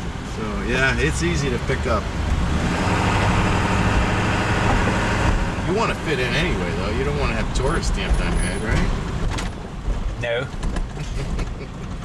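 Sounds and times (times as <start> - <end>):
engine rumble inside vehicle: 0.0 - 12.0
road noise: 0.0 - 12.0.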